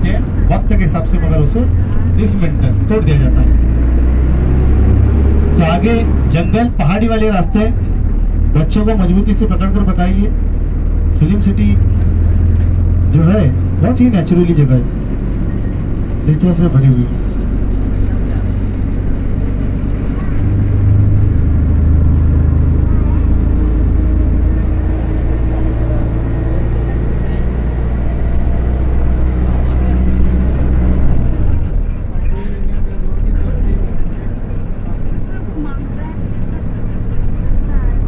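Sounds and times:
bus engine running: 0.0 - 38.0.

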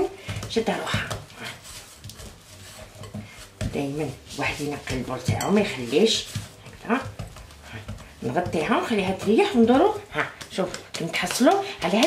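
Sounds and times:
hands kneading dough in bowl: 0.0 - 12.0.

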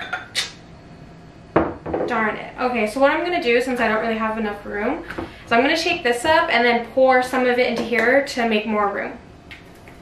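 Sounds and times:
glassware clinking: 0.0 - 0.4
glass knocking on counter: 1.6 - 2.1.

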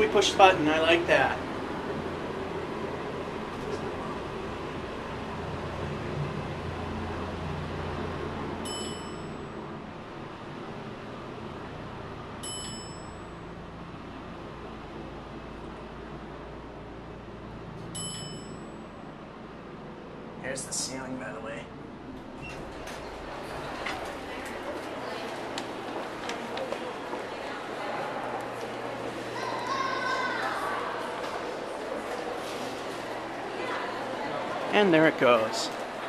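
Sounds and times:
elevator hum and rumble: 0.0 - 36.0
short high electronic dings: 8.6 - 9.5, 12.4 - 13.3, 17.9 - 18.9.

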